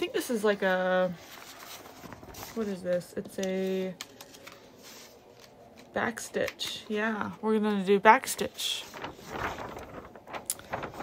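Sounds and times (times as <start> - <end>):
paper crackling: 0.0 - 6.9, 8.2 - 11.0
paper sheets rustling: 0.0 - 6.9, 8.2 - 11.0.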